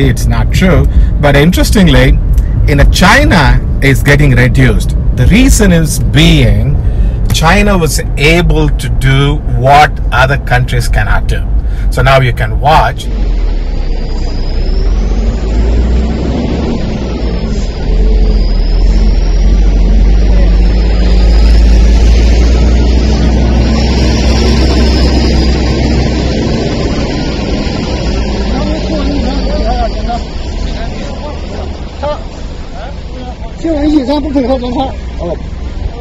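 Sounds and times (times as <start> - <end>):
car engine running: 0.0 - 36.0
faint high whine: 12.0 - 35.4
voices: 27.9 - 36.0.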